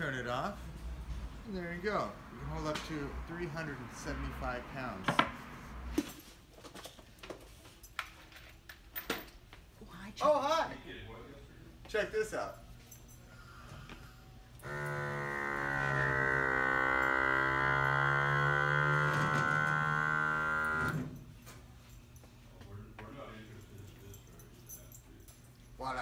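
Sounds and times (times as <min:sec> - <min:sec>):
electric vacuum pump humming: 0:13.4 - 0:21.2.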